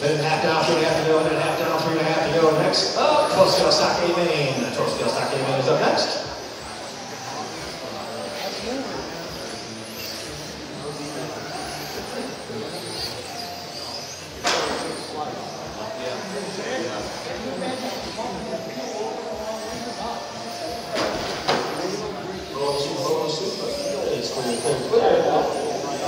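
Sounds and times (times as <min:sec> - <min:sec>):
rc car motors whining: 0:00.0 - 0:26.0
voices in a large hall: 0:00.0 - 0:26.0.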